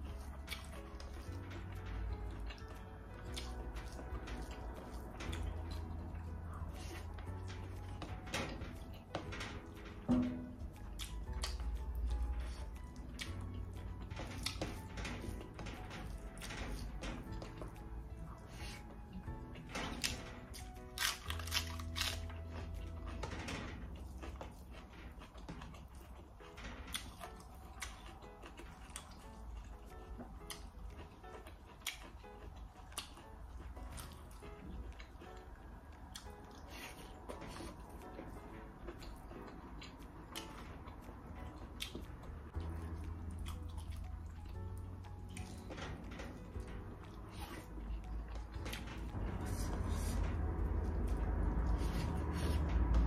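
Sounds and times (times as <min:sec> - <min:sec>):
background music with held notes: 0:00.0 - 0:53.0
eating by hand clicks and smacks: 0:00.0 - 0:53.0.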